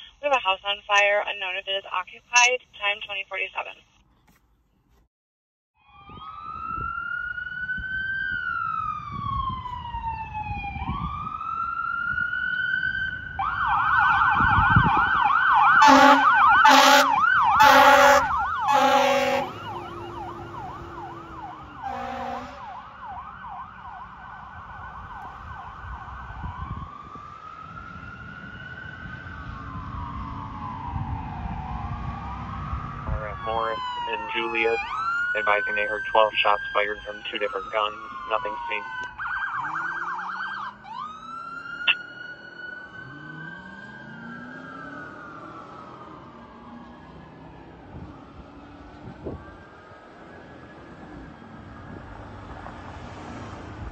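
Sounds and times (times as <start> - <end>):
fire engine siren: 5.8 - 53.9
air horn blasts: 15.8 - 22.8.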